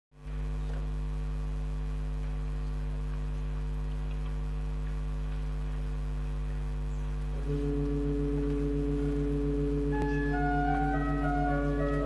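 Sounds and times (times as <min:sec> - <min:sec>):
pipe organ chord: 0:07.3 - 0:12.0.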